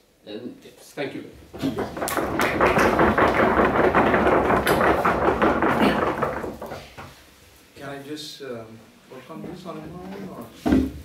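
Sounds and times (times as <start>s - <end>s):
audience applauding: 1.6s - 6.7s.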